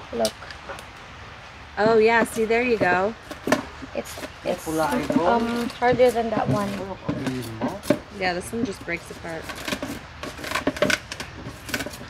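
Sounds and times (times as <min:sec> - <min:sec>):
sea urchin shells cracking: 0:09.4 - 0:12.0.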